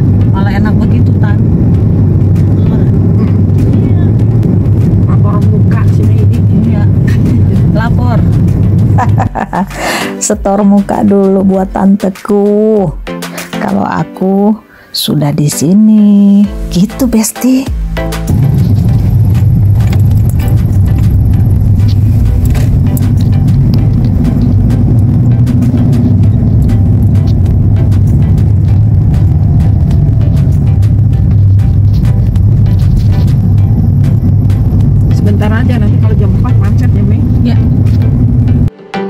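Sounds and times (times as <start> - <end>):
car cabin road rumble: 0.0 - 9.9, 18.3 - 38.7.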